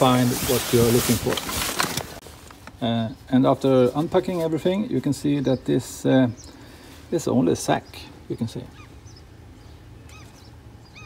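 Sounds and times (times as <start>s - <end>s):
bird chirps: 5.2s - 6.9s, 7.7s - 11.0s.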